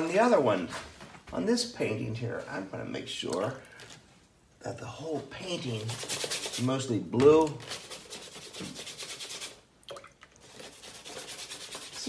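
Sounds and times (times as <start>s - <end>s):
paintbrush scrubbing on paper: 5.6s - 6.9s, 7.5s - 9.6s, 10.4s - 12.0s.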